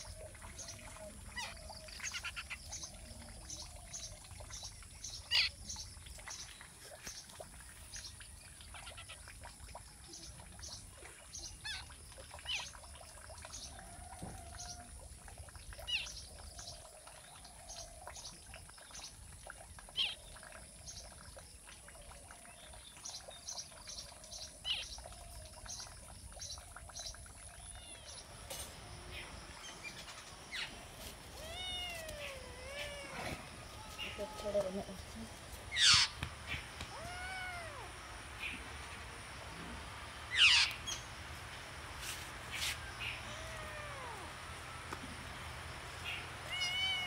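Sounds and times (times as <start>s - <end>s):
rustling in grass: 30.1s - 36.9s, 41.4s - 43.7s
kitten meowing: 31.4s - 34.8s, 36.8s - 37.9s, 43.2s - 44.3s, 46.4s - 47.0s
steady high hiss: 35.0s - 47.0s
bird chirps: 35.7s - 37.2s, 40.3s - 41.1s.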